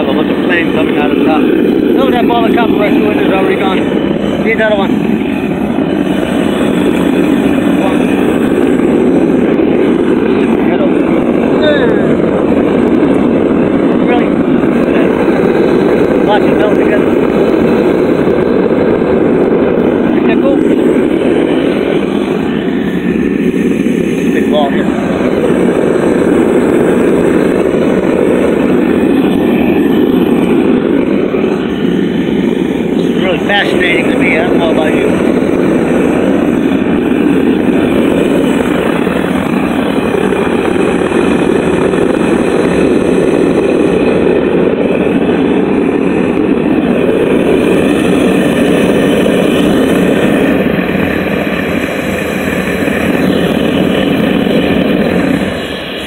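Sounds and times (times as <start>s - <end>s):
forge burner roaring: 0.0s - 56.0s.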